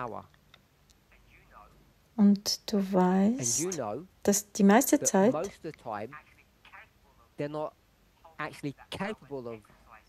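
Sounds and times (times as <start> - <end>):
person speaking short words: 2.9 - 3.9.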